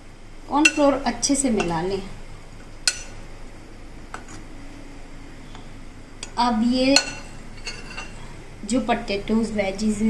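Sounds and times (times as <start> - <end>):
glass bowl clinking: 7.0 - 8.2.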